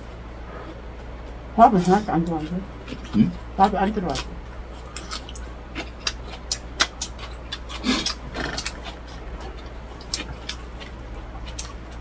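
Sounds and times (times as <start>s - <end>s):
steady low hum: 0.0s - 12.0s
chewing lettuce: 1.8s - 12.0s.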